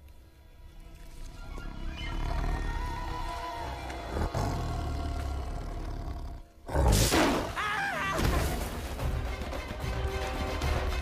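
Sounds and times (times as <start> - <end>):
tense orchestral film score: 0.0 - 11.0.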